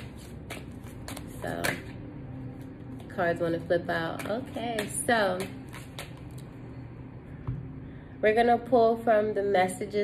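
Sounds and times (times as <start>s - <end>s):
cards shuffling: 0.0s - 1.9s, 4.2s - 6.5s.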